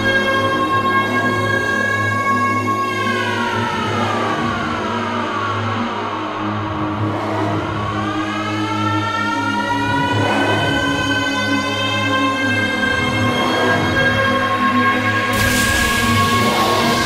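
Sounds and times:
steady low bass: 15.2s - 17.0s.

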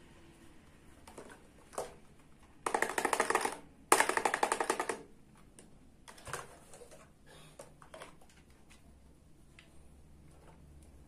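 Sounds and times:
toy cash register rattling clicks: 2.7s - 5.1s.

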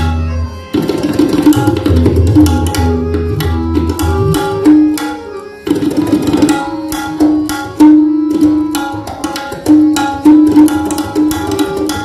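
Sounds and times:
harmonium repeating melody: 0.0s - 12.0s
tabla drumming: 0.0s - 12.0s.

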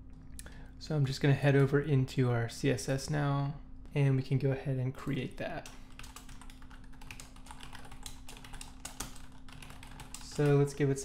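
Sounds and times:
computer keyboard typing: 5.9s - 11.0s.

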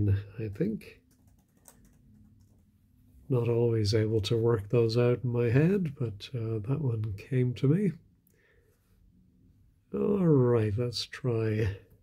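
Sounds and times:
keyboard typing: 1.0s - 2.7s.

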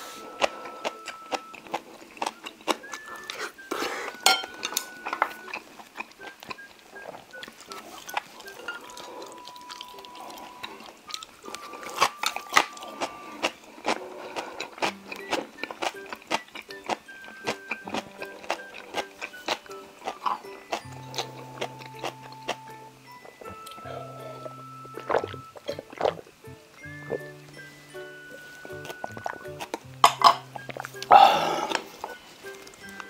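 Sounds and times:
light background music: 0.0s - 33.0s
wet chewing: 0.2s - 33.0s.

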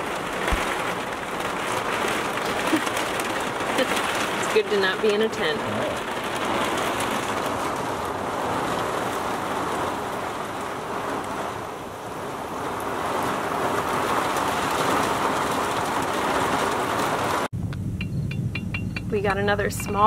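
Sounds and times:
heavy rain on a trailer roof: 0.0s - 17.5s.

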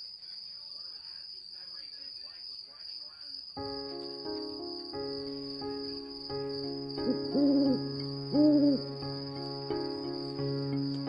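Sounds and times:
soft lullaby music: 3.6s - 11.0s
owl-like hooting calls: 7.0s - 8.9s.

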